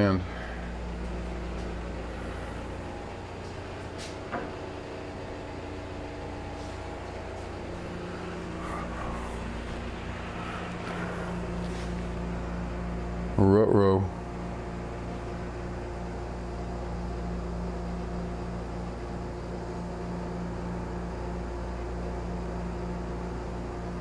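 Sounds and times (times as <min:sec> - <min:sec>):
low mechanical hum: 0:00.0 - 0:24.0.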